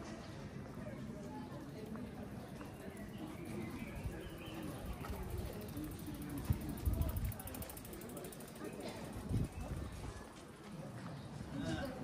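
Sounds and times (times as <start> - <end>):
faint voices: 0.0 - 12.0
street ambience: 0.0 - 12.0
bicycle freewheel ticking: 5.8 - 8.7.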